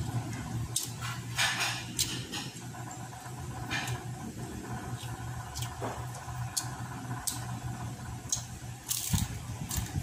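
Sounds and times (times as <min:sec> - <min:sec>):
steady low hum: 0:00.0 - 0:10.0
wet chewing mouth sounds: 0:04.8 - 0:07.4.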